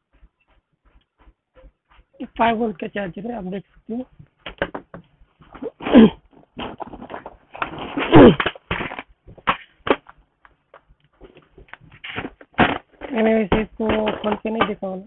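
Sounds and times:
knocks of things handled: 0:04.1 - 0:05.6, 0:06.3 - 0:14.9.

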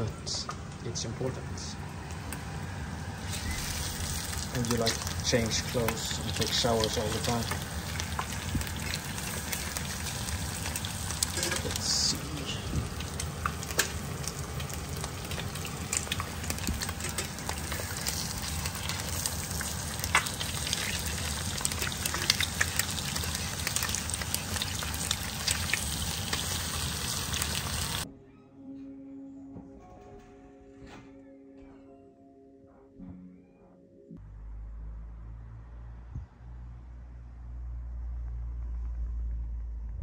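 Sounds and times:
eggs sizzling in a pan: 0:03.2 - 0:28.1.

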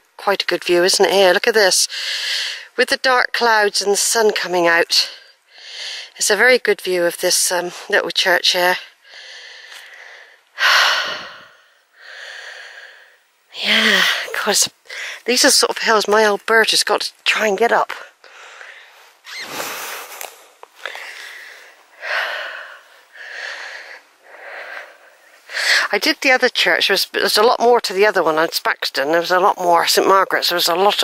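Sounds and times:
woman breathing and sighing: 0:09.0 - 0:15.3, 0:18.1 - 0:25.9.

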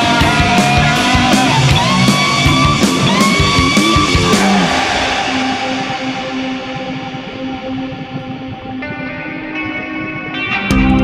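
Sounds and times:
rock guitar riff: 0:00.0 - 0:11.0.

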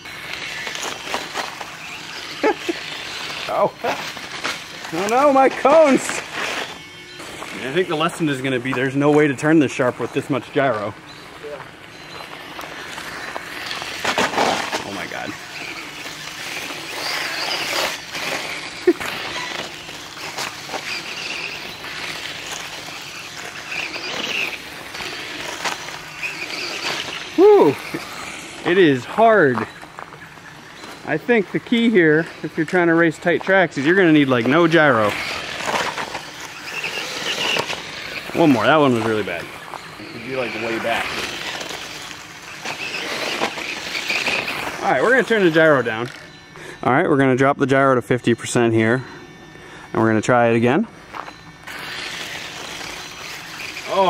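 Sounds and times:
scrabbling gravel: 0:00.0 - 0:46.4, 0:51.0 - 0:54.0
toy motorcycle running on gravel: 0:00.0 - 0:49.1, 0:49.9 - 0:54.0
tyres hissing over stones: 0:00.5 - 0:06.5.

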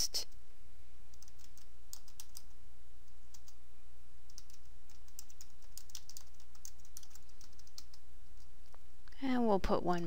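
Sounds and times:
typing on computer keyboard: 0:01.2 - 0:02.5, 0:04.3 - 0:08.0.

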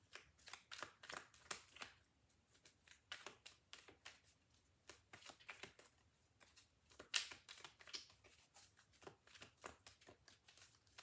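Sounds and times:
cards being shuffled by hand: 0:00.0 - 0:11.0.

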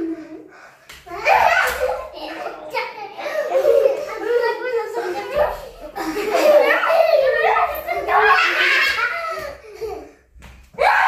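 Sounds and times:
young children laughing: 0:01.1 - 0:10.4.

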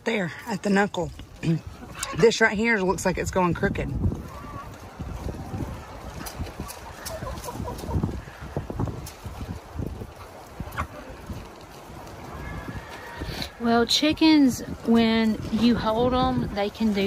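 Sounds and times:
chickens clucking quietly: 0:01.4 - 0:02.6, 0:04.1 - 0:13.6.

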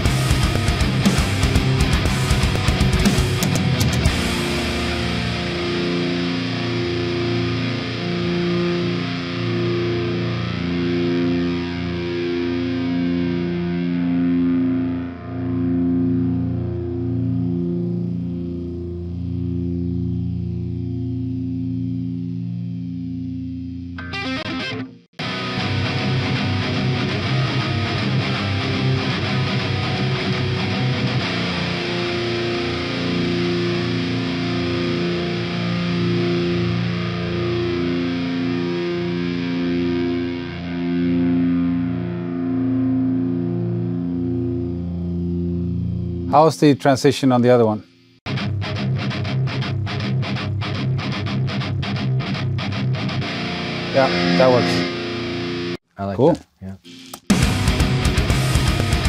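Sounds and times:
distorted electric guitar chords: 0:00.0 - 0:59.0.

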